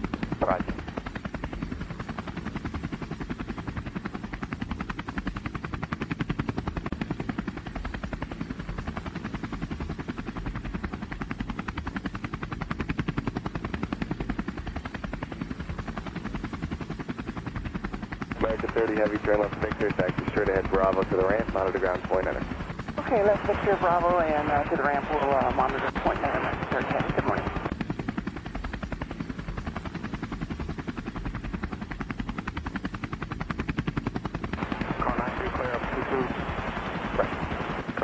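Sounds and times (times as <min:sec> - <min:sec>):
quadcopter propellers buzzing: 0:00.0 - 0:38.0.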